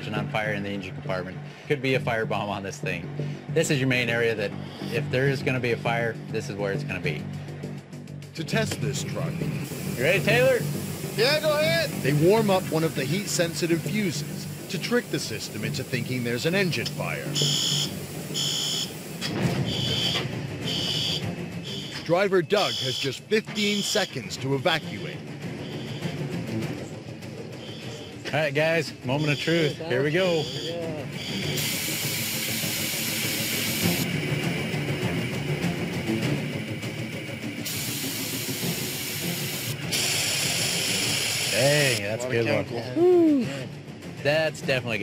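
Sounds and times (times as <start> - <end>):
loud steady hiss of powder discharge: 8.9 - 21.9, 31.3 - 42.1
high-pitched alarm beeps: 17.4 - 19.0, 19.6 - 26.2, 29.1 - 31.9.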